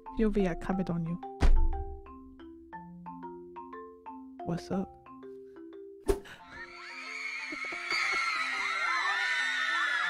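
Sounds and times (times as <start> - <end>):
marimba-like background music: 0.0 - 10.0
hand slamming on desk: 1.4 - 1.7.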